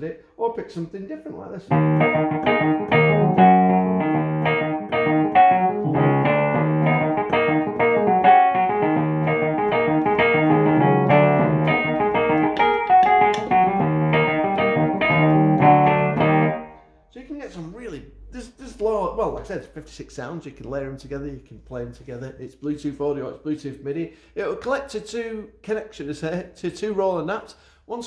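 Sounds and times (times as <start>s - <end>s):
digital piano chords: 1.7s - 17.0s.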